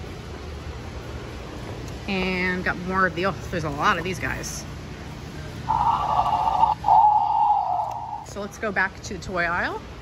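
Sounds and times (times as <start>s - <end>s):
toy dinosaur sound effect: 5.7s - 8.3s.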